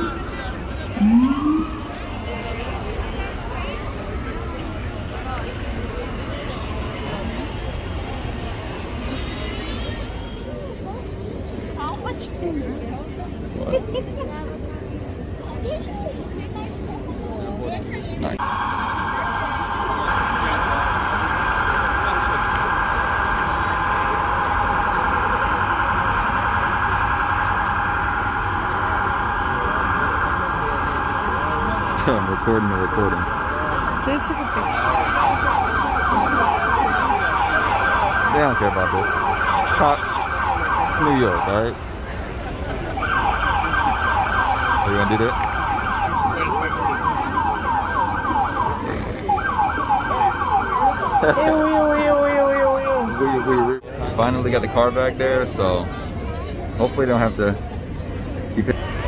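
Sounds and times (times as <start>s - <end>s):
police siren warbling: 0.0s - 2.9s, 18.4s - 42.1s, 42.8s - 53.8s
crowd noise: 0.0s - 59.0s.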